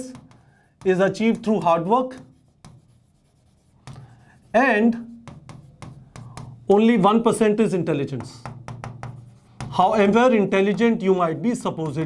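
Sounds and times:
chalk scratching on chalkboard: 0.0s - 7.4s, 8.1s - 12.0s
chalk tapping: 0.0s - 12.0s.

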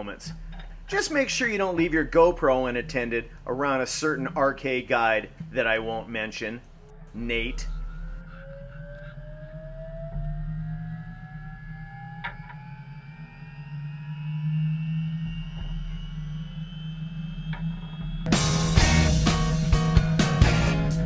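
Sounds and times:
helicopter turbine whine: 0.0s - 19.7s
loud music: 18.2s - 21.0s.

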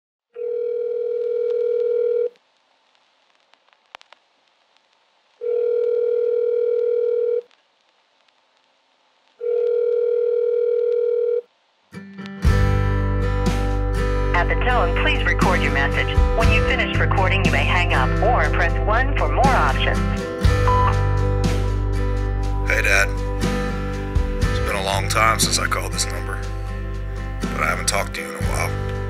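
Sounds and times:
telephone ringback tone: 0.4s - 2.3s, 5.4s - 7.4s, 9.4s - 11.5s
music: 11.9s - 29.0s.

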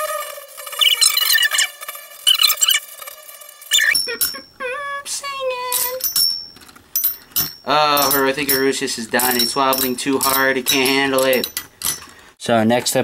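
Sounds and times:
spinning tops ringing whine: 0.5s - 4.7s.

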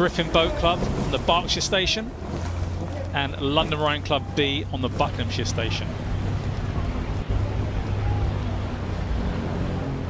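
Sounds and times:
boat engine droning: 0.0s - 10.0s
rushing water: 0.0s - 10.0s.

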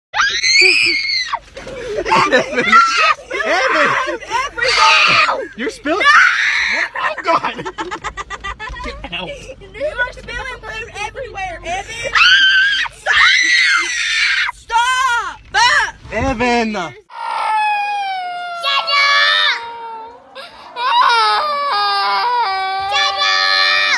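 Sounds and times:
boy screaming: 0.2s - 1.4s, 2.1s - 7.1s, 12.1s - 15.2s, 17.1s - 23.9s
high-pitched wailing cry: 2.2s - 5.4s, 17.1s - 23.9s.

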